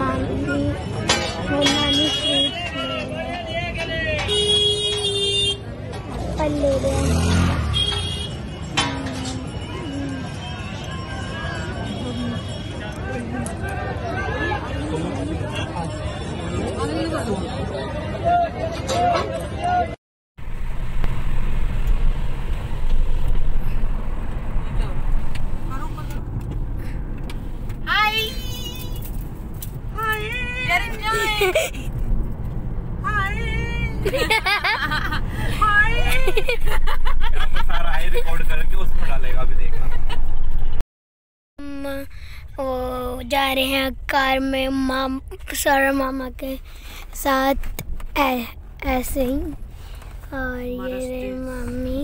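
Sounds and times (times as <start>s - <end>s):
market crowd voices: 0.0s - 7.7s, 8.3s - 20.0s
road and engine noise in car: 0.0s - 18.4s, 20.4s - 40.8s, 41.6s - 52.0s.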